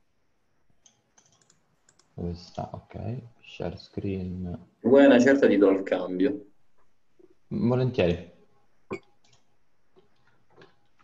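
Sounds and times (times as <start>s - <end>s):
computer mouse and keys clicking: 0.7s - 2.8s, 8.9s - 11.0s.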